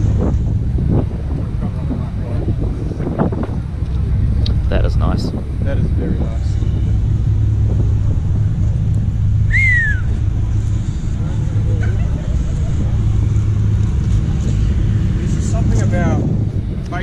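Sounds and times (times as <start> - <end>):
car engine idling: 0.0 - 17.0
falling whistle: 9.5 - 10.2.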